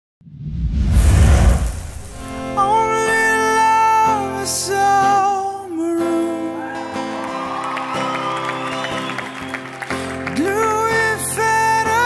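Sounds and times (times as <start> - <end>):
rush of noise with deep rumble: 0.2 - 2.6
acoustic guitar: 1.5 - 12.0
man singing: 2.6 - 6.8, 10.2 - 12.0.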